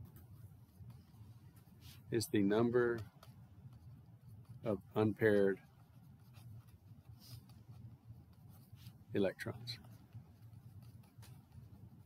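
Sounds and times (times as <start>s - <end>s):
low steady hum: 0.0s - 12.0s
stylus scratching on tablet screen: 0.0s - 12.0s.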